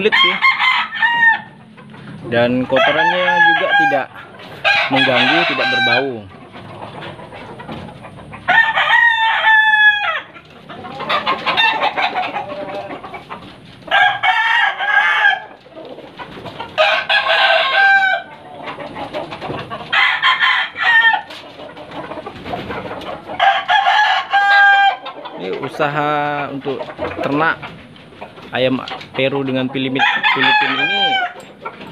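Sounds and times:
chicken clucking: 0:00.0 - 0:31.9
roosters crowing: 0:00.0 - 0:31.9.

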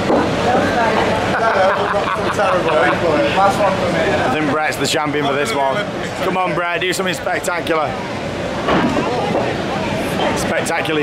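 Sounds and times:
crowd babble in a hall: 0:00.0 - 0:11.0.

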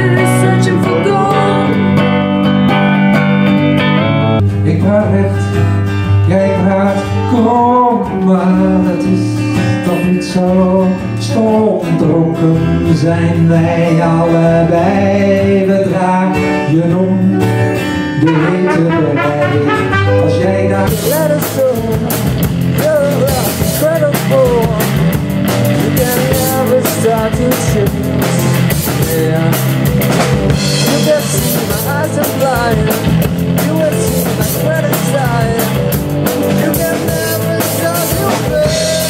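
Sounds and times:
man singing: 0:00.0 - 0:02.0, 0:04.5 - 0:39.0
drum kit: 0:00.0 - 0:12.0, 0:17.2 - 0:39.0
acoustic guitar: 0:00.0 - 0:39.0
bass guitar: 0:00.0 - 0:39.0
electric guitar: 0:00.0 - 0:39.0.

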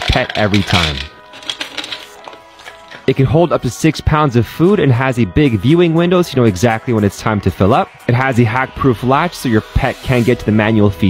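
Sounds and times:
soft music with held notes: 0:00.0 - 0:11.0.

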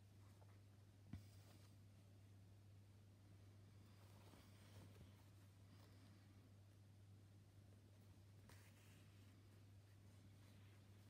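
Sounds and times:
steady low hum: 0:00.0 - 0:11.0
fabric rustling: 0:03.8 - 0:06.2, 0:08.4 - 0:11.0.

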